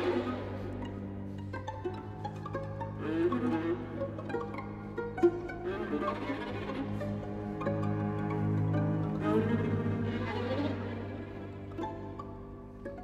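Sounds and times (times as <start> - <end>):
low strings sustained notes: 0.0 - 13.0
string pizzicato plucks: 0.0 - 13.0.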